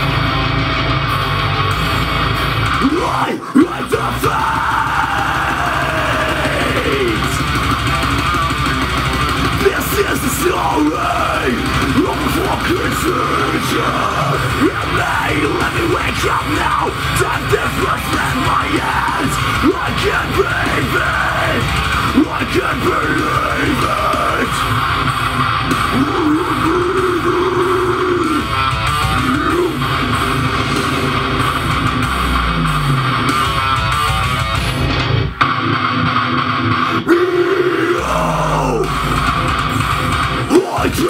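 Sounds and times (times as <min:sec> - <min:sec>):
heavy electric guitar: 0:00.0 - 0:41.0
metalcore backing track: 0:00.0 - 0:41.0
harsh screamed vocals: 0:02.6 - 0:33.7, 0:36.6 - 0:41.0.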